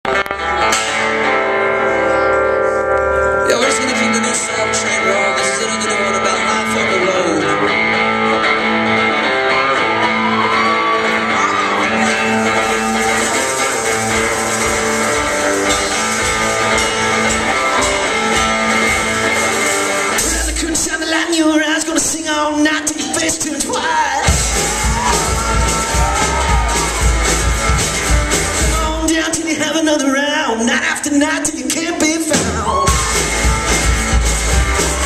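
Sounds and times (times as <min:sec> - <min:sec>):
drums: 0:00.0 - 0:35.0
live band playing: 0:00.0 - 0:35.0
upright bass: 0:00.0 - 0:35.0
guitar chords ringing: 0:00.1 - 0:20.6.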